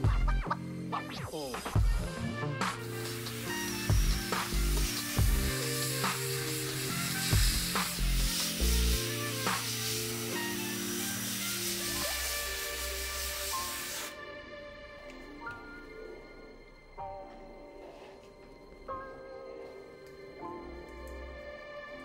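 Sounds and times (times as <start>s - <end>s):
background music with bass beat: 0.0s - 13.6s
airbrush spraying hiss: 1.4s - 14.2s.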